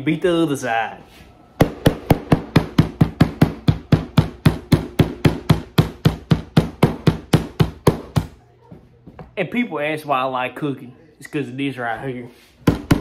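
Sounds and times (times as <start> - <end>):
metal mallet pounding meat on board: 1.6 - 8.3, 12.7 - 13.0.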